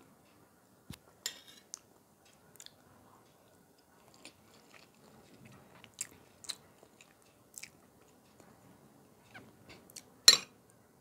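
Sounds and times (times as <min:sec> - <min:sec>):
person chewing food: 0:03.4 - 0:08.6.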